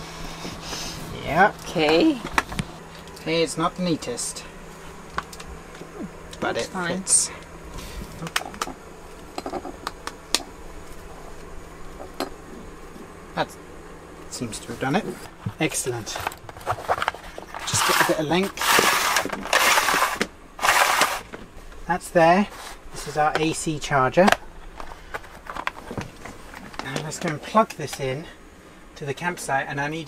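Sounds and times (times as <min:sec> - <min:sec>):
low steady hum: 0:00.0 - 0:30.0.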